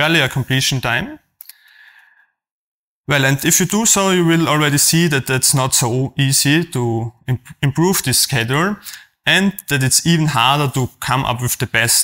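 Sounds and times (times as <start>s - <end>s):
mouth clicks: 1.4s - 1.8s.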